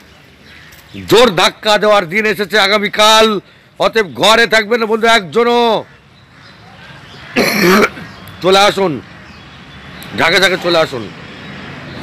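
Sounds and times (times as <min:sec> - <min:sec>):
faint background noise: 0:00.0 - 0:12.0
man coughing: 0:07.4 - 0:08.0.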